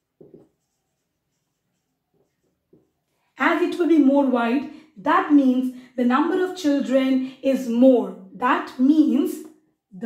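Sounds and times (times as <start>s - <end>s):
marker pen scratching on whiteboard: 0.0s - 3.1s.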